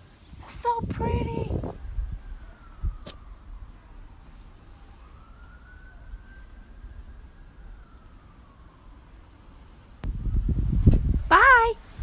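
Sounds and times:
faint siren wailing: 0:00.0 - 0:12.0.

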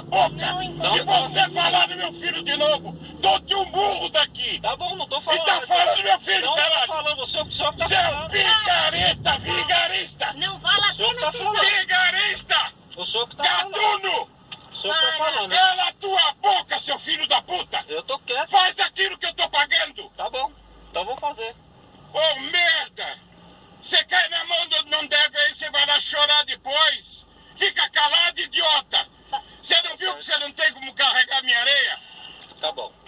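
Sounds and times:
man talking: 0:00.0 - 0:21.6
recorded voice arguing: 0:00.0 - 0:33.0.

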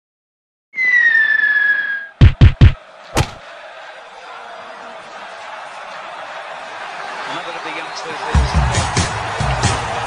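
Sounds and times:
high whistle-like tone: 0:00.8 - 0:02.2
heavy booming thuds: 0:02.2 - 0:03.4.

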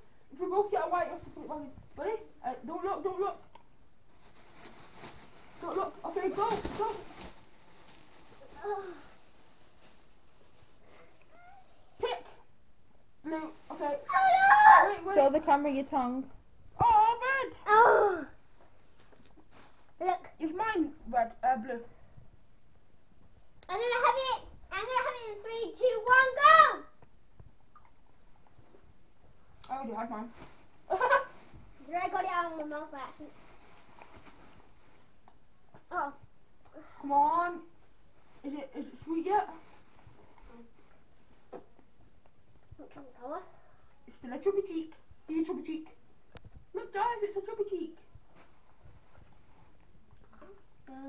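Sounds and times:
quiet room noise: 0:00.0 - 0:51.0
child crying out: 0:14.1 - 0:15.0
child's wordless vocal sound: 0:17.6 - 0:18.4.

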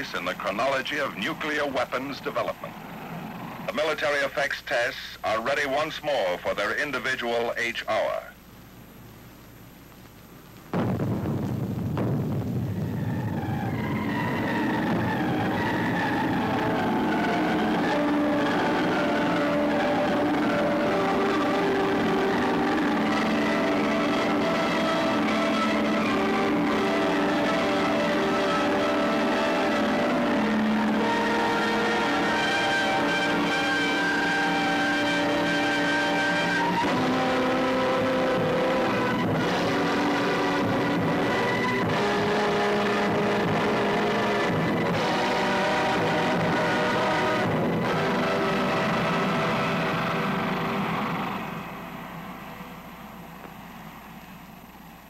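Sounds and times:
loud crash with rumble: 0:10.7 - 0:15.9.

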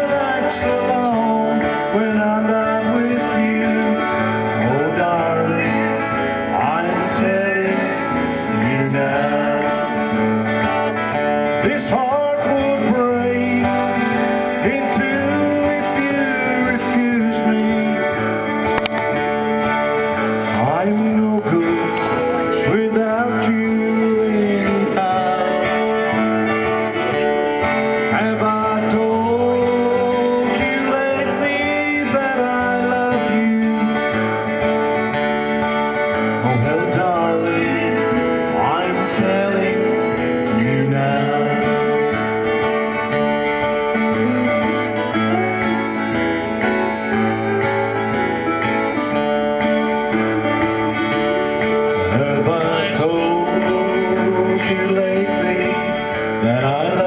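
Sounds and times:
acoustic guitar: 0:00.0 - 0:57.0
person singing: 0:00.0 - 0:57.0.

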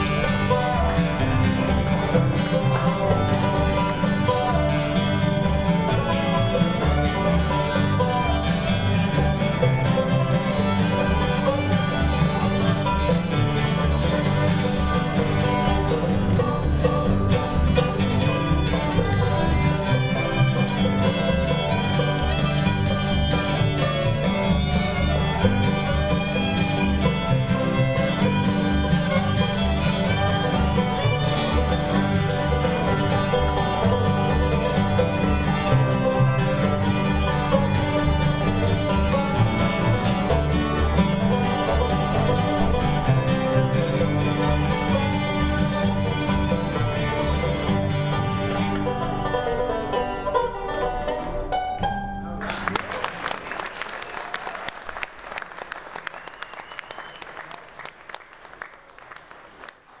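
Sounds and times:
bluegrass band playing: 0:00.0 - 0:55.0
audience applause: 0:52.4 - 1:00.0.

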